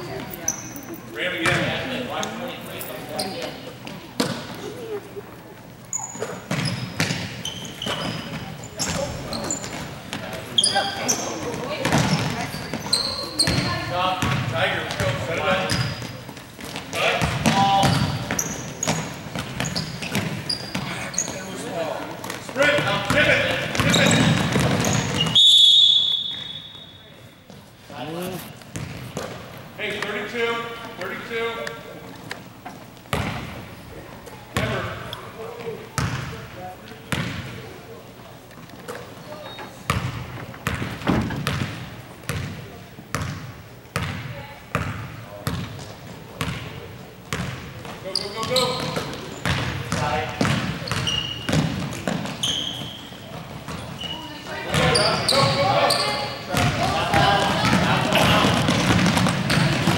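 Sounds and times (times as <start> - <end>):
sneaker squeaks: 0.0 - 5.2, 5.8 - 29.5, 38.8 - 42.5, 47.3 - 59.9
basketball bouncing: 6.4 - 10.4, 11.5 - 21.4, 22.2 - 25.4, 28.6 - 29.5, 33.1 - 33.6, 36.0 - 36.4, 37.1 - 37.6, 39.9 - 54.0, 56.6 - 59.9
referee's whistle: 25.1 - 27.1.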